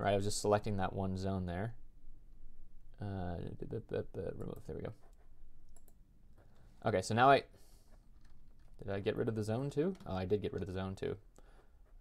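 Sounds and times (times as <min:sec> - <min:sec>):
computer mouse clicks: 0:04.4 - 0:06.0.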